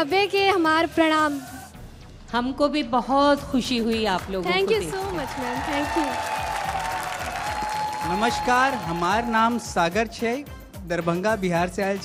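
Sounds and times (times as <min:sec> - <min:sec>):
studio audience applauding: 0:04.1 - 0:10.0.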